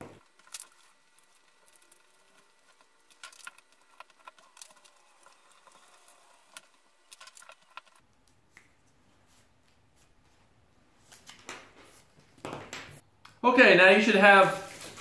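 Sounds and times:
paper rustling: 14.3 - 15.0.

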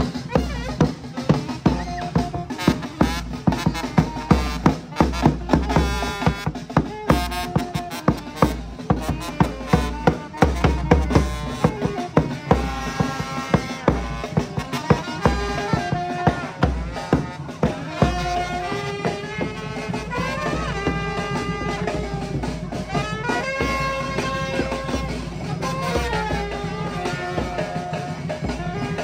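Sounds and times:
bass drum: 0.0 - 29.0
saxophone: 0.0 - 29.0
snare drum: 0.0 - 29.0
trombone: 0.0 - 29.0
trumpet: 0.0 - 29.0.

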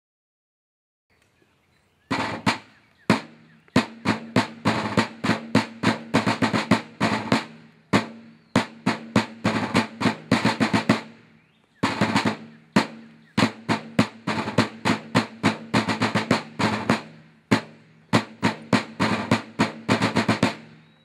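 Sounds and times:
snare drums playing cadence: 2.1 - 20.8.

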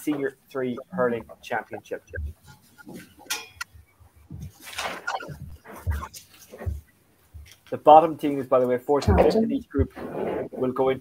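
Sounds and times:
short rustles: 4.3 - 7.8.

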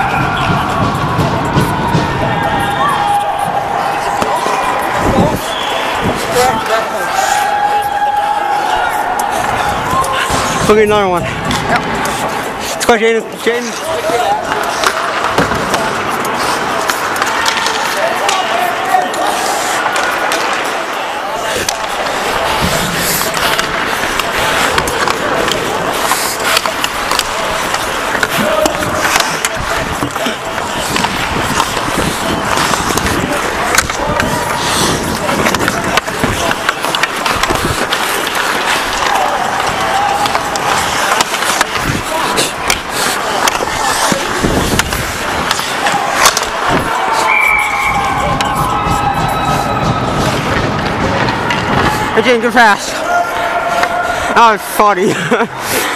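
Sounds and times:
hockey sticks clacking: 0.0 - 55.9
skates scraping on ice: 0.1 - 55.9.

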